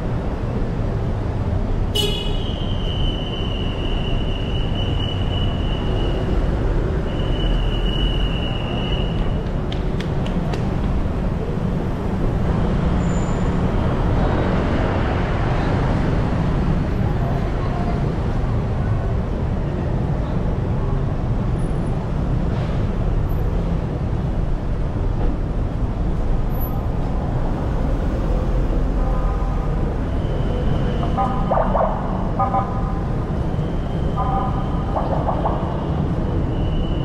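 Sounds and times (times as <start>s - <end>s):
city traffic rumble: 0.0s - 37.0s.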